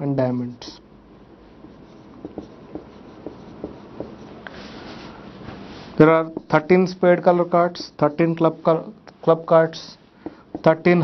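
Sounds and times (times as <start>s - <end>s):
marker squeaking on whiteboard: 1.7s - 4.4s.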